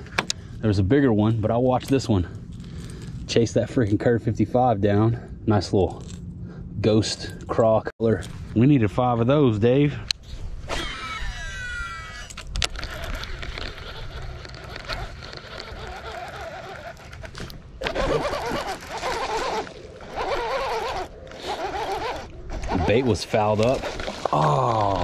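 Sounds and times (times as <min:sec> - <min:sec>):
fishing reel spool whining: 0:10.8 - 0:25.0.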